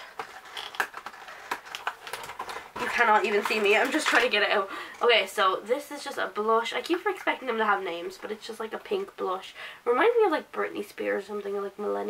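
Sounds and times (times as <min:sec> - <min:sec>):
cardboard and plastic creaking: 0:00.0 - 0:04.5.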